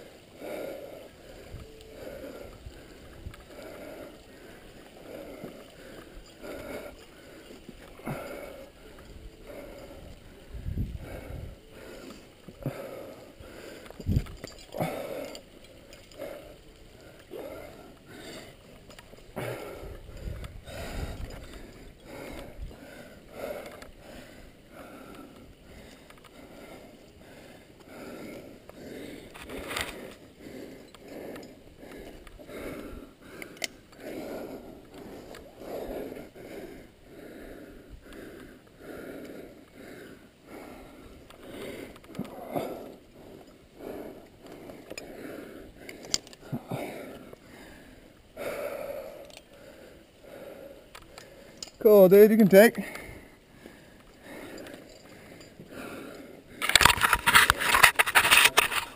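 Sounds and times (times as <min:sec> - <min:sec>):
person breathing hard: 0:00.0 - 0:51.8, 0:52.8 - 0:58.9
climbing gear clicks: 0:00.0 - 0:58.9.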